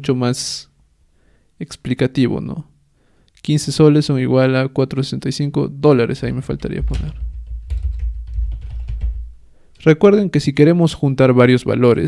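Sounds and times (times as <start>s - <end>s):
typing on computer keyboard: 6.8s - 9.3s.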